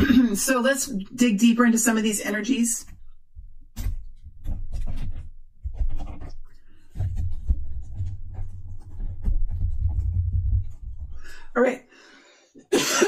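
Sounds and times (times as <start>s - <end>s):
low rumble of hands on table: 3.4s - 11.4s.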